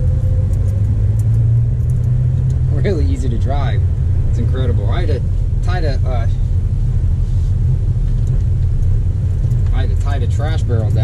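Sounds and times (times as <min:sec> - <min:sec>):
road noise: 0:00.0 - 0:11.0
truck engine rumble: 0:00.0 - 0:11.0.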